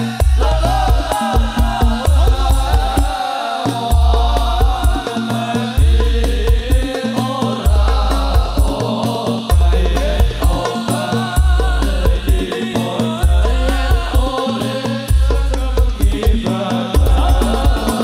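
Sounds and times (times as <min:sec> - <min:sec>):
men singing devotional song: 0:00.0 - 0:18.0
sharp percussion strikes: 0:00.0 - 0:18.0.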